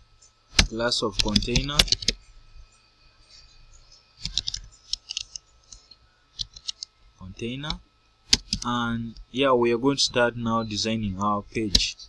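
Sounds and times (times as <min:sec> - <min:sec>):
keyboard typing: 0:00.6 - 0:02.2, 0:04.2 - 0:05.4, 0:06.4 - 0:06.9, 0:07.6 - 0:08.8.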